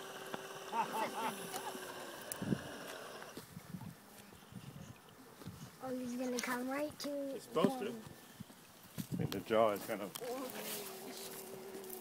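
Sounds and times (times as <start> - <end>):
model boat motor whine: 0.0 - 3.4, 10.5 - 12.0.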